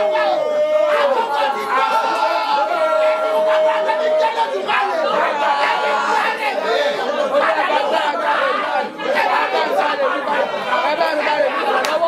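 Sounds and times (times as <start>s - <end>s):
many voices praying aloud: 0.0s - 12.0s.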